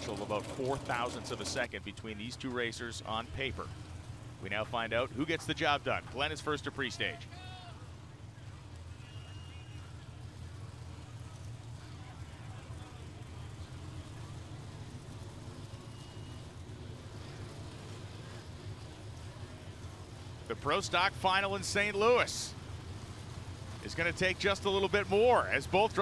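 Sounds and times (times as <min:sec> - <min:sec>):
drag car engines idling: 0:00.0 - 0:26.0.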